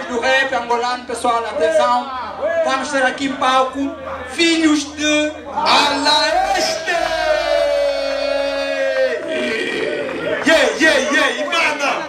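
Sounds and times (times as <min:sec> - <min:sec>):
mixed voices: 0:05.4 - 0:12.0.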